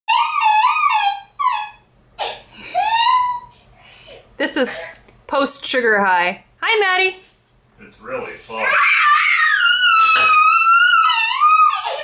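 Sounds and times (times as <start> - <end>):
toddler crying: 0.1 - 3.6, 8.6 - 12.0.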